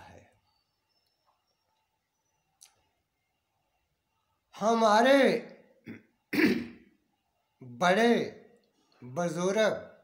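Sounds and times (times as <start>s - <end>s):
man speaking: 4.6s - 5.6s, 7.6s - 8.4s, 9.0s - 10.0s
man clearing his throat: 5.8s - 6.9s.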